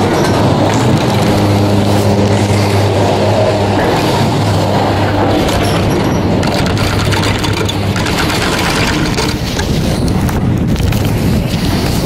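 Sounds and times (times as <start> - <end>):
chairlift rope rumbling over sheaves: 0.0 - 12.0
fast mechanical clicking: 4.8 - 11.2.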